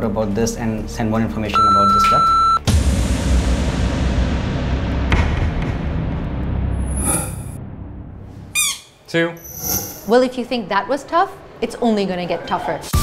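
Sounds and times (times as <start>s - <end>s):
noisy hit with low rumble: 2.7s - 8.3s.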